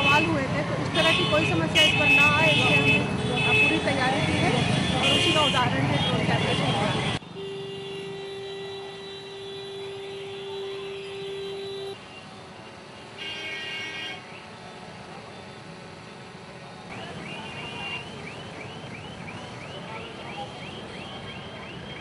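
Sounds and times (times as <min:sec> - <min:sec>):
street traffic noise: 0:00.0 - 0:22.0.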